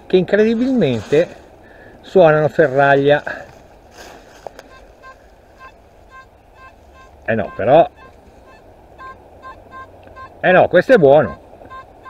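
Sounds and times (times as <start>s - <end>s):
metal detector beeps: 4.7s - 10.4s, 11.2s - 11.9s.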